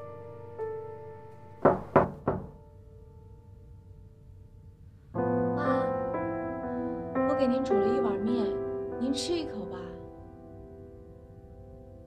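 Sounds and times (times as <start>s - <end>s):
soft background piano music: 0.0s - 12.0s
knocking on wooden door: 1.6s - 2.6s.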